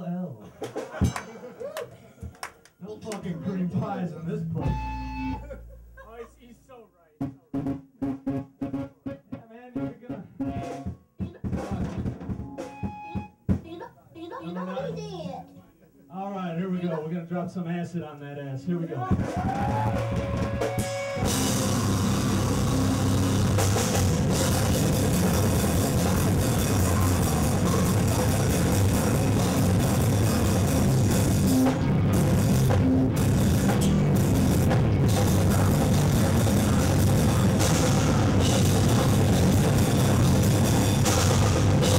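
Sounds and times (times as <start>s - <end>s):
heavy rock band playing: 19.1s - 41.9s.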